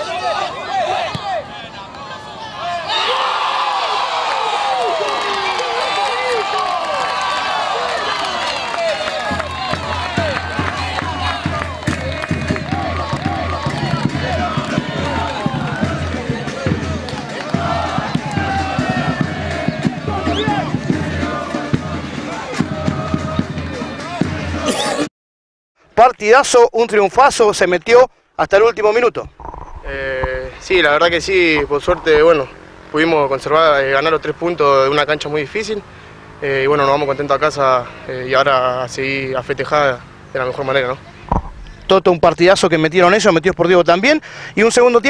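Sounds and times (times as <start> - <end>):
crowd shouting and cheering: 0.0 - 24.7
low rhythmic beat: 29.3 - 32.5.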